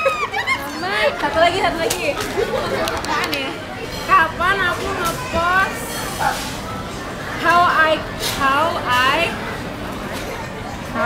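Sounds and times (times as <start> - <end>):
people chatting at a table: 0.0 - 11.0.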